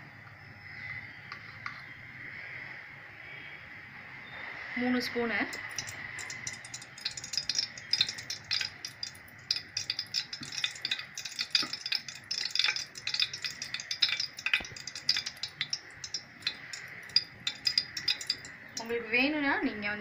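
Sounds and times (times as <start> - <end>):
hot oil sizzling and popping: 5.4 - 19.0.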